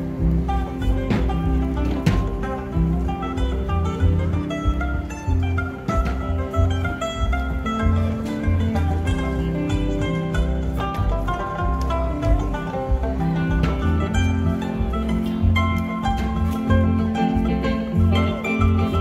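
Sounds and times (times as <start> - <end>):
electric guitar: 0.0 - 19.0
mandolin: 0.0 - 19.0
plucked double bass: 0.0 - 19.0.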